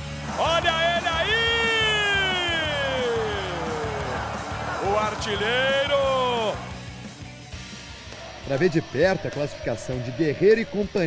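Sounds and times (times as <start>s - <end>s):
background music: 0.0s - 11.0s
commentator shouting goal: 0.3s - 6.6s.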